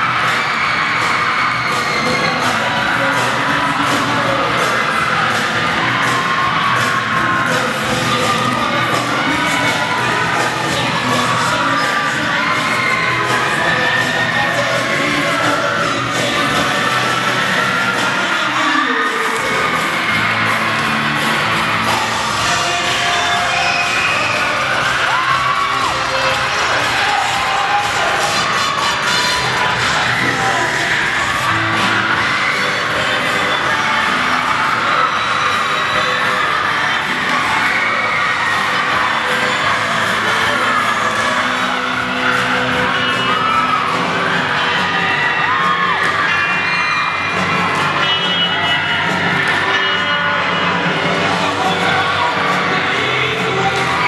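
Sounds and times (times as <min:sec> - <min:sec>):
crowd cheering and shouting: 0:00.0 - 0:54.0
loud dance music: 0:00.0 - 0:54.0.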